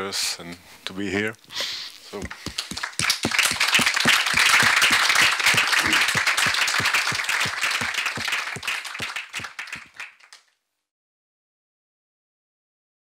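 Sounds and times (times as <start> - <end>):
audience applauding: 2.2 - 10.5.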